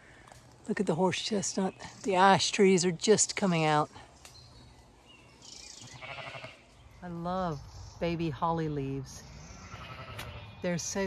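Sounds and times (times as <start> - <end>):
sheep bleating: 5.9 - 6.6, 9.6 - 10.5.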